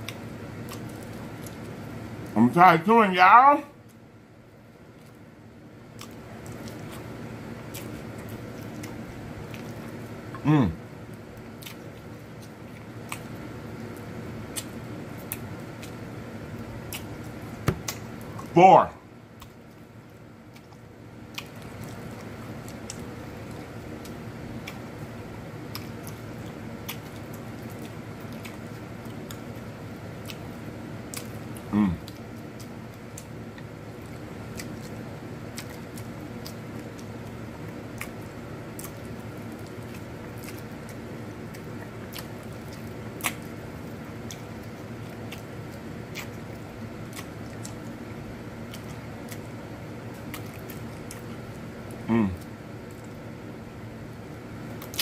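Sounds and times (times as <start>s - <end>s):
person chewing with wet mouth smacks: 0.0s - 2.4s, 5.9s - 10.4s, 11.0s - 18.6s, 19.4s - 53.2s, 54.6s - 55.0s
steady background hum: 0.0s - 55.0s.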